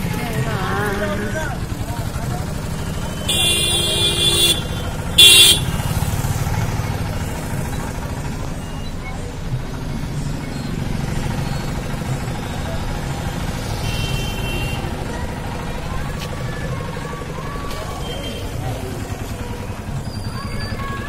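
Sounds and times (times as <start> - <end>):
road traffic passing: 0.0 - 21.0
vehicle horn honking: 3.1 - 6.1, 13.8 - 14.9.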